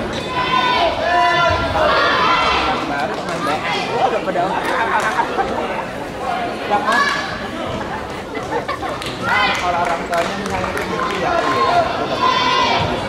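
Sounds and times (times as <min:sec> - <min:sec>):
echoing chatter: 0:00.0 - 0:13.0.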